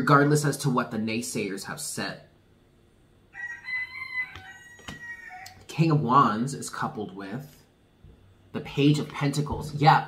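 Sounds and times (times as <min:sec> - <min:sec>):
rooster crowing: 0:03.3 - 0:05.7.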